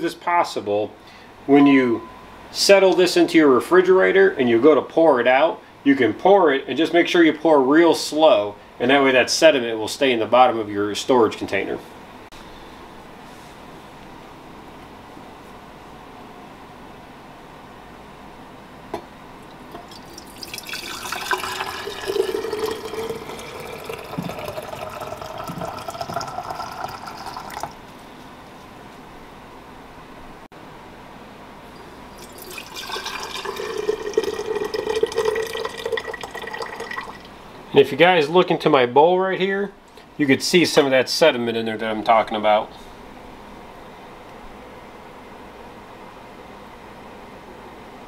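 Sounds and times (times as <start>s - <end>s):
liquid pouring into glass jar: 19.5s - 27.8s, 32.1s - 37.3s.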